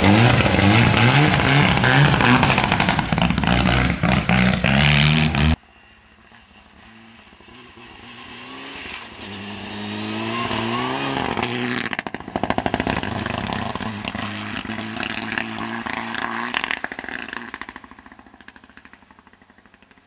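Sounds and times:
exhaust crackling: 0.0 - 5.6, 6.4 - 20.0
rally car engine revving: 0.0 - 5.6, 6.7 - 18.4.

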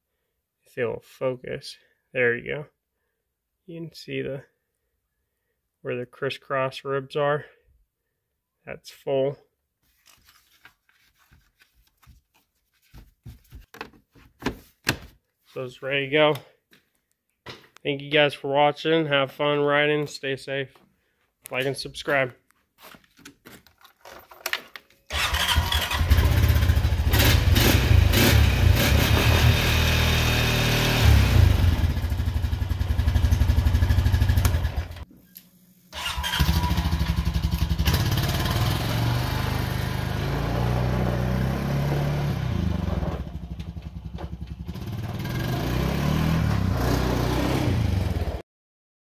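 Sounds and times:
atv engine running: 25.1 - 35.0, 36.4 - 48.4.

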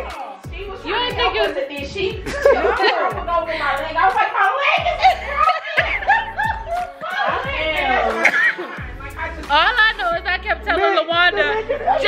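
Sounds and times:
woman laughing: 2.2 - 9.0, 11.3 - 12.0.

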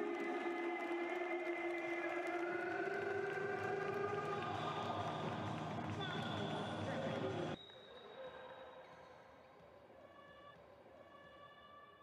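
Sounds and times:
crowd noise: 0.0 - 10.4
high whistle-like tones: 7.6 - 9.2.

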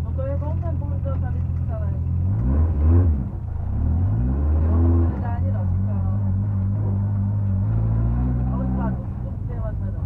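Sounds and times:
car engine revving inside cabin: 0.1 - 10.0.

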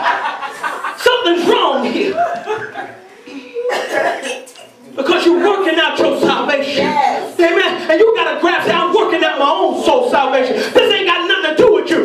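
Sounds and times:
man preaching into a microphone: 1.0 - 2.2, 5.0 - 12.0.

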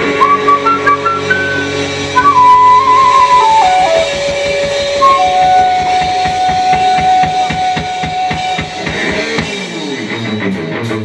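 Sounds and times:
flute long notes: 0.0 - 9.4
steady drum beat: 0.6 - 11.0.

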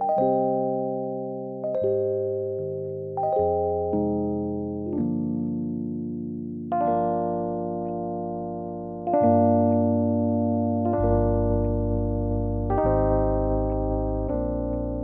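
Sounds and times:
digital piano playing slow chords: 0.0 - 15.0.

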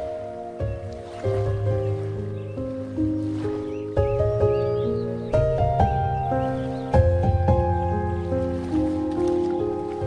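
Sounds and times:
ocean waves: 0.0 - 10.0
slow piano music: 0.0 - 10.0.

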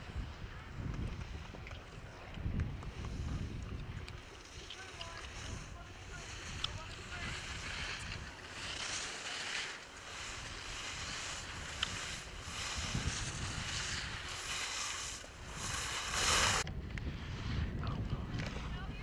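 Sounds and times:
skis sliding over snow: 0.0 - 19.0
wind rumbling on microphone: 0.0 - 19.0.

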